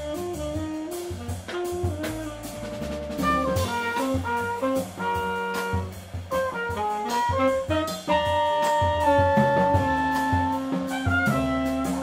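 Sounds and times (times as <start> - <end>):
drum and cymbal hits: 0.0 - 12.0
jazz quartet playing live: 0.0 - 12.0
walking bass: 0.0 - 12.0.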